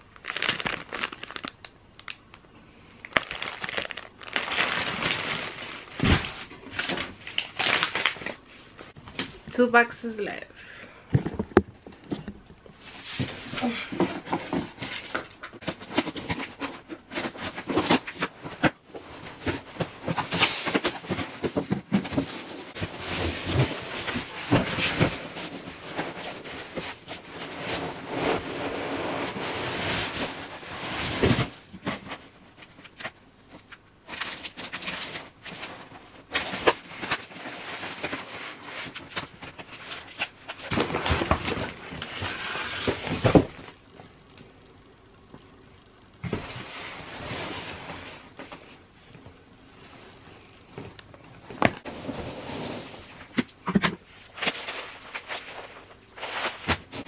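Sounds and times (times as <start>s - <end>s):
packing peanuts rustling: 0.1s - 2.4s, 3.0s - 8.4s.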